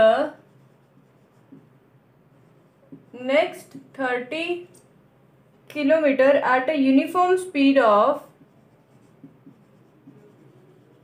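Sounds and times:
marker writing on whiteboard: 0.2s - 1.8s, 2.4s - 3.8s, 8.2s - 11.0s.

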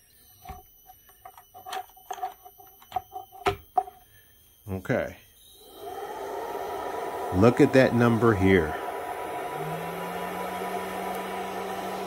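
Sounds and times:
high electronic whine: 0.0s - 12.0s.

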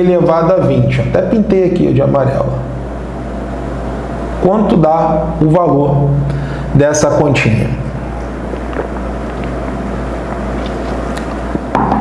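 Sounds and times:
low hum and rumble: 0.0s - 12.0s.

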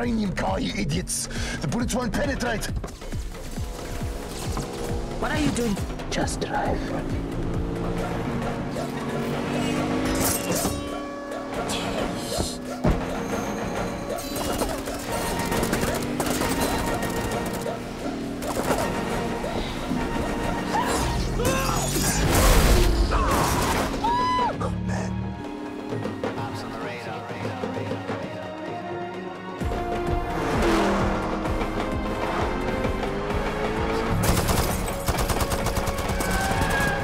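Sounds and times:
dramatic score with steady beat: 23.0s - 37.0s.

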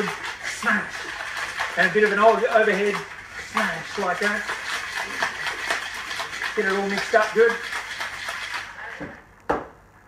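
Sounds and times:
ice rattling in cocktail shaker: 0.0s - 9.0s.

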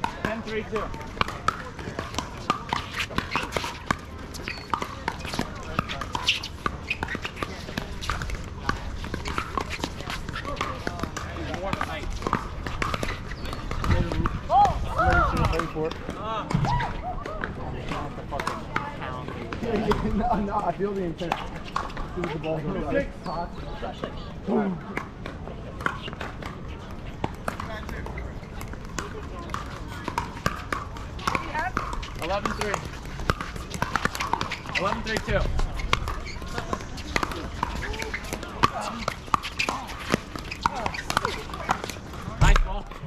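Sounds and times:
background chatter of voices: 0.0s - 43.0s.

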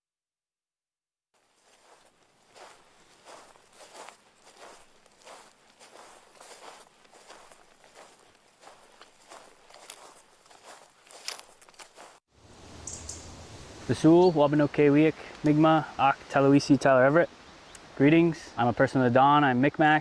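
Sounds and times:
plants swishing: 1.4s - 12.2s
footsteps through tall grass: 1.4s - 12.3s.

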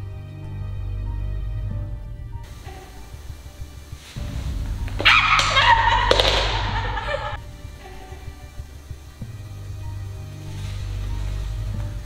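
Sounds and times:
background music: 0.0s - 12.0s
high wavering yelp: 4.2s - 8.8s
broomstick clattering on wooden floor: 5.0s - 7.2s.

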